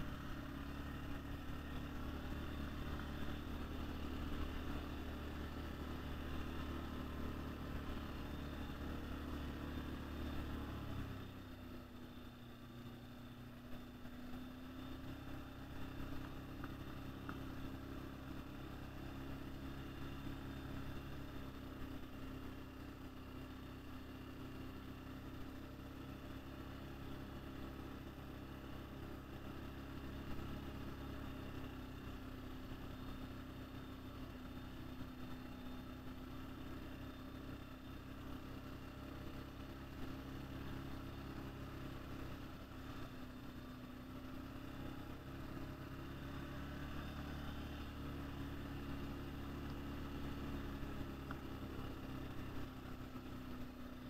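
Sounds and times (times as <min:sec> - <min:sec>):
atv engine running: 0:00.0 - 0:54.0.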